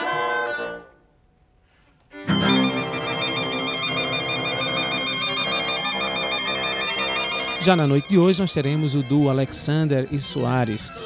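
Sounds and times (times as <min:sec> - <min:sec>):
electronic background music: 0:02.3 - 0:09.4
fast two-note high warble: 0:02.3 - 0:09.4.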